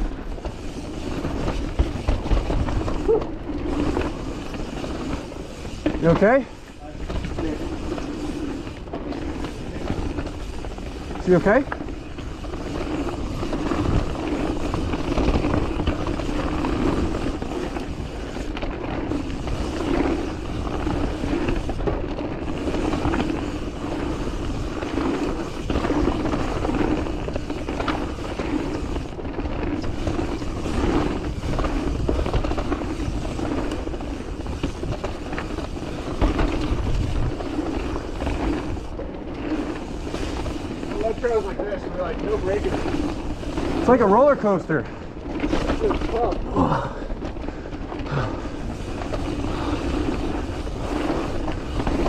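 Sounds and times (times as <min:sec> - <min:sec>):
bike rattling and knocking: 0:00.0 - 0:52.0
wind rumble on microphone: 0:06.8 - 0:44.0
tyre roar: 0:45.5 - 0:47.2.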